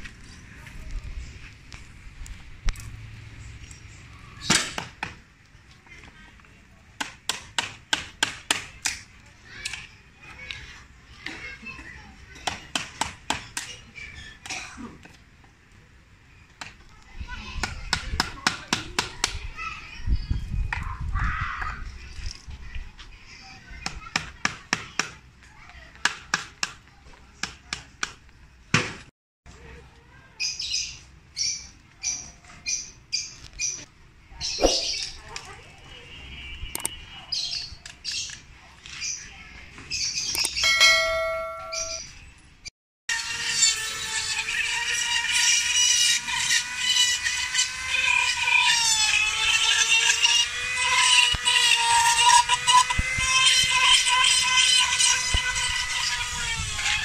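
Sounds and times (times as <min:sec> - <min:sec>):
short high chirps: 0:40.4 - 0:42.1.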